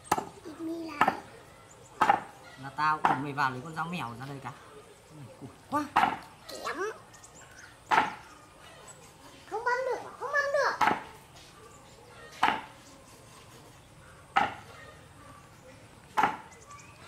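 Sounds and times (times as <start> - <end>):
cleaver chopping on wooden board: 7.9 - 8.2, 10.8 - 11.0, 14.4 - 14.6, 16.2 - 16.5.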